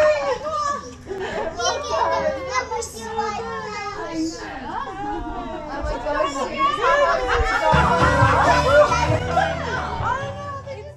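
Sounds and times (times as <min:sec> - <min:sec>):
women talking excitedly: 0:03.4 - 0:10.9.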